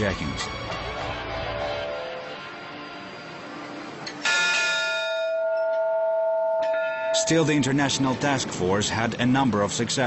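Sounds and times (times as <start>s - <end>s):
bell ringing: 4.2s - 8.2s.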